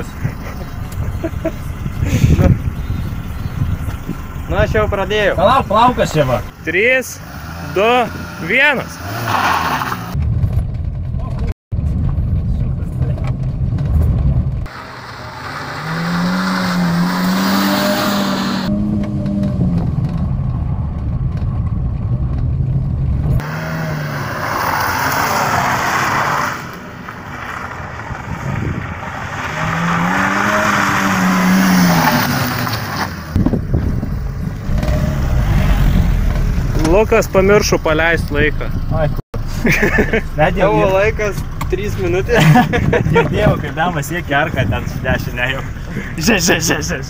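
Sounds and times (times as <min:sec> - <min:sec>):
car engine revving: 0:00.6 - 0:11.0, 0:12.8 - 0:39.2.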